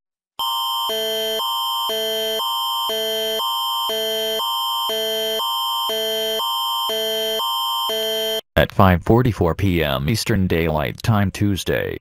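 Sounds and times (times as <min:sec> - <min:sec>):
electronic alert tone: 0:00.4 - 0:08.4.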